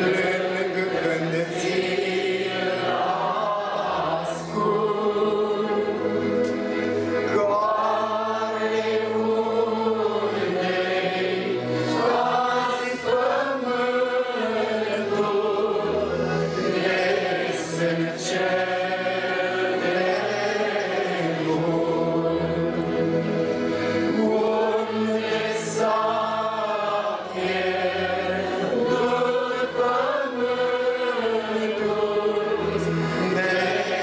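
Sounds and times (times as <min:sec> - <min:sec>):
congregation singing a hymn: 0:00.0 - 0:34.0.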